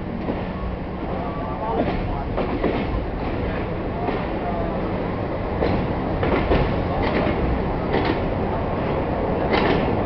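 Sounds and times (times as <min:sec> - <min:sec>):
train rumbling: 0:00.0 - 0:10.0
wheel clacks over rail joints: 0:05.6 - 0:08.3, 0:09.4 - 0:10.0.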